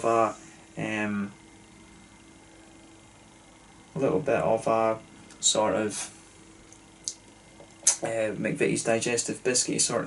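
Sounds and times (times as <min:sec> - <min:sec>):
person speaking: 0:00.0 - 0:01.4, 0:07.1 - 0:10.0
faint steady hum: 0:00.0 - 0:10.0.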